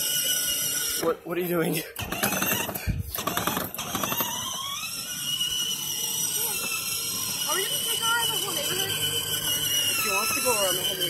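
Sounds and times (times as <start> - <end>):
toy car electric motor whining: 0.0 - 11.0
rattling and clicking gearbox: 2.0 - 4.6.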